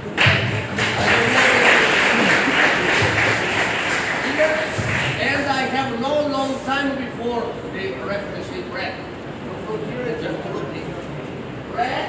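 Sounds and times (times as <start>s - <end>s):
many voices in echoing hall: 0.0s - 12.0s.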